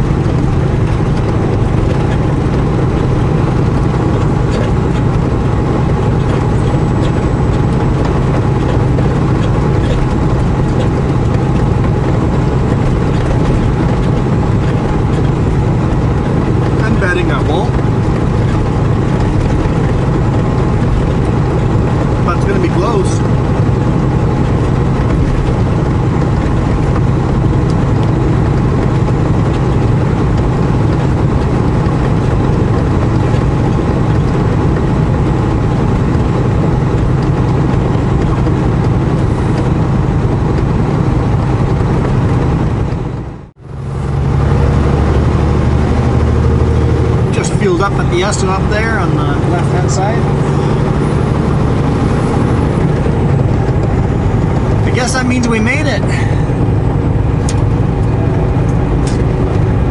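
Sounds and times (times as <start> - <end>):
truck engine and road noise: 0.0 - 59.9.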